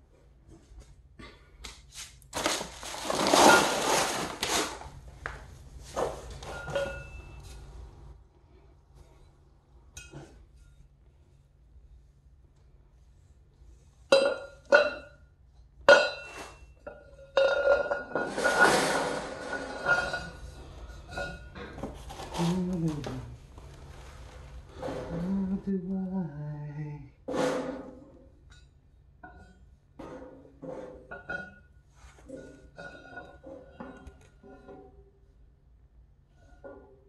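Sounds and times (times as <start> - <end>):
metal scraping on tile: 3.0 - 4.8, 15.9 - 23.2, 30.0 - 35.0
steel parts clanking on tile floor: 6.0 - 7.6, 15.9 - 22.5, 27.3 - 35.0.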